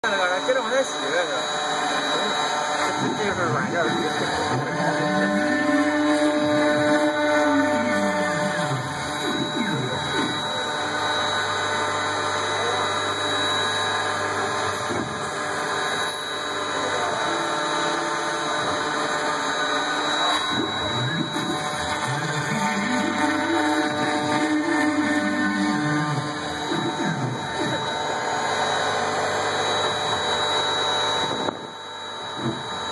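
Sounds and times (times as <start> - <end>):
steady high tone: 0.0 - 31.6
router motors whining: 0.0 - 32.9.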